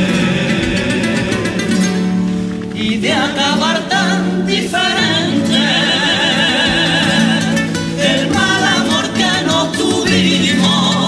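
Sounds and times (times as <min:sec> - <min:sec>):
choir singing in harmony: 0:00.0 - 0:01.8, 0:02.8 - 0:11.0.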